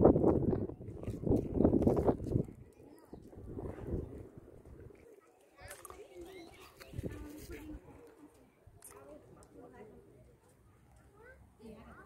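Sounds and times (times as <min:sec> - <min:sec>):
distant people talking: 0:02.4 - 0:12.0.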